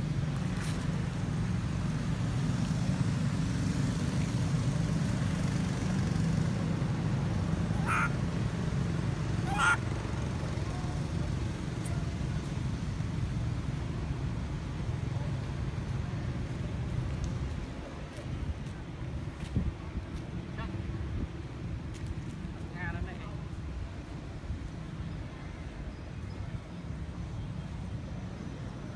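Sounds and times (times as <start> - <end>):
low outdoor rumble: 0.0 - 28.9.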